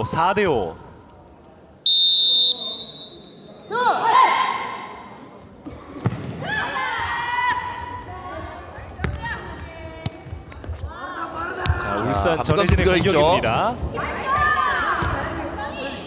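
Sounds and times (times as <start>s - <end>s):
referee's whistle blast: 1.9s - 3.4s
ball kicked with a thud: 6.0s - 6.4s, 9.0s - 9.2s.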